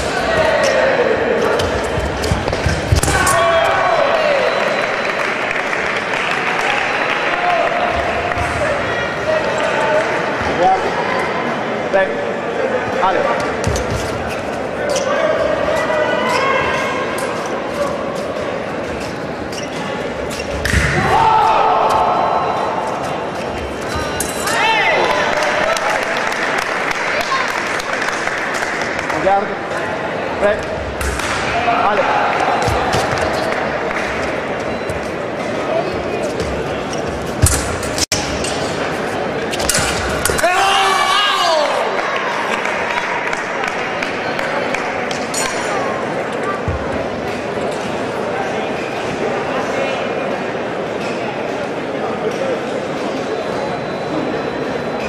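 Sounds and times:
murmur of voices: 0.0 - 55.0.

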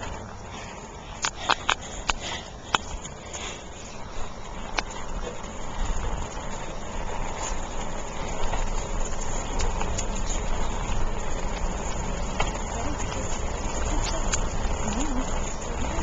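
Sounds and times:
road and tyre noise: 0.0 - 16.0.

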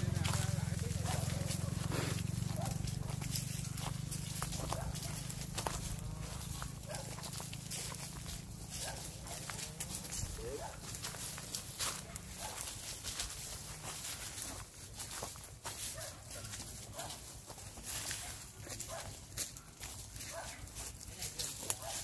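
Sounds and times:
footsteps crunching dry leaves: 0.0 - 22.0.

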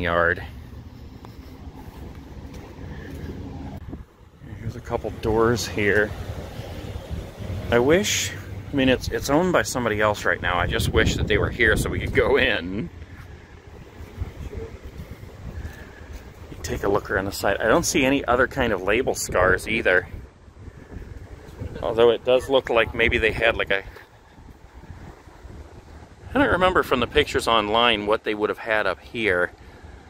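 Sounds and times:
wind buffeting microphone: 0.0 - 28.0
low outdoor rumble: 0.0 - 30.0.

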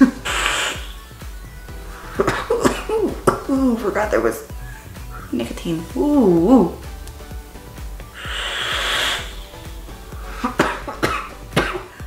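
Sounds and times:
person exhaling vapour: 0.0 - 1.2, 8.2 - 10.8
soft background music: 0.0 - 12.0
short cough-like catch: 10.4 - 11.9.

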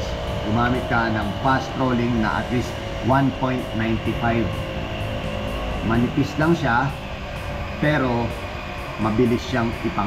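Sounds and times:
man talking: 0.0 - 4.6, 5.8 - 7.0, 7.8 - 8.4, 9.0 - 10.0
steady background hum: 0.0 - 10.0.

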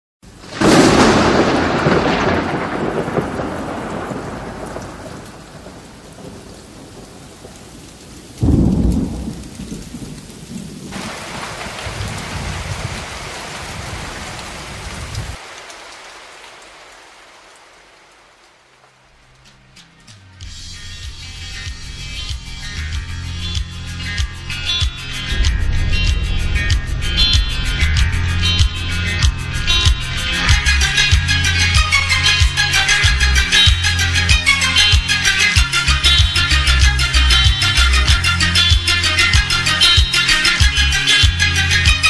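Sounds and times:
thunder rumbling: 0.2 - 16.8, 24.4 - 39.6
steady rain: 0.2 - 42.0.

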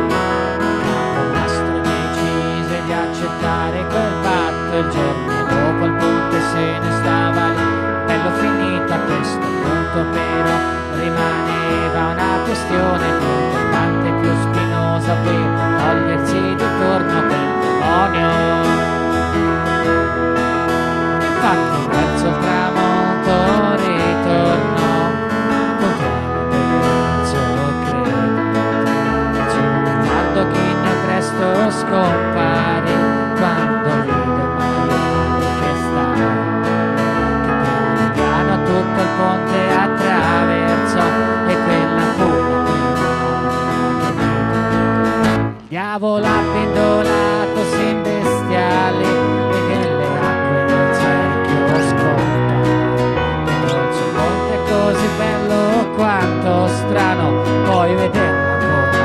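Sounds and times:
keyboard chords: 0.0 - 59.0
strummed acoustic guitar: 0.0 - 59.0.

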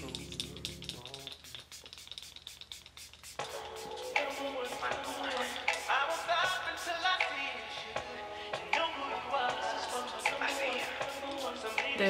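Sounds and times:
background music: 0.0 - 1.5, 3.3 - 12.0
spray bottle misting hisses: 0.0 - 7.2, 10.3 - 12.0.

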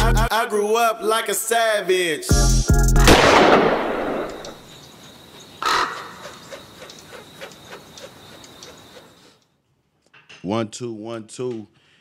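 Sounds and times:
crow-like caw with echoes: 5.6 - 7.3.

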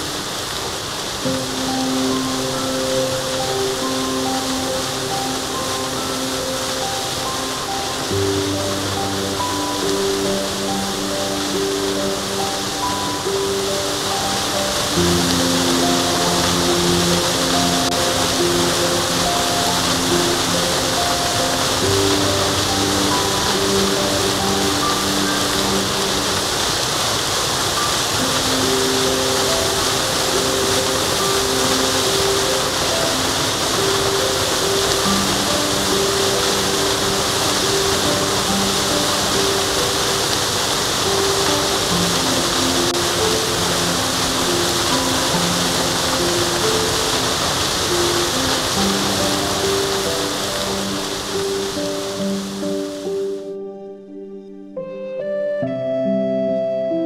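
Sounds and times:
waterfall roaring: 0.0 - 53.4
soft background music: 0.0 - 57.0.

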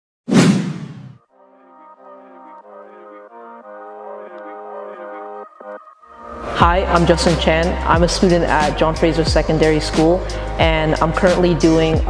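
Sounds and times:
loud whoosh: 0.3 - 1.2
soft background music: 1.3 - 12.0.

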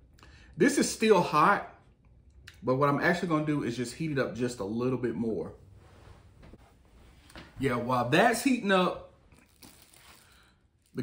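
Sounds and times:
plastic wrap crinkling: 9.3 - 11.0.

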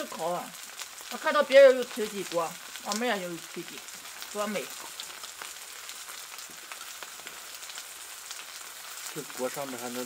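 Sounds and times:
meat sizzling on a hot pan: 0.0 - 10.0.

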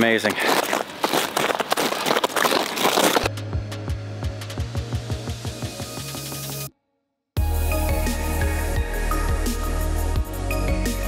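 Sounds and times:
footsteps crunching on gravel: 0.0 - 3.3
background music with beat: 3.3 - 6.7, 7.4 - 11.0.

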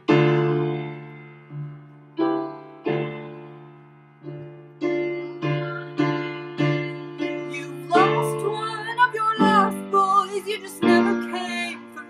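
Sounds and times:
piano chords: 0.0 - 12.0
person singing wordless line: 5.4 - 12.0.

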